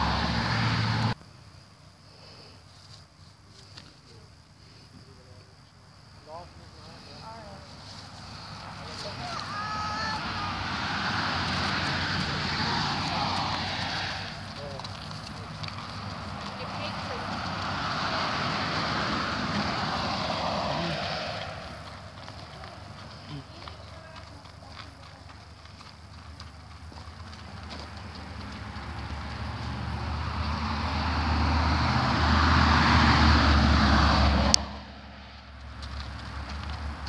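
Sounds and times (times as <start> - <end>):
car passing on road: 0.0 - 1.2, 6.2 - 37.0.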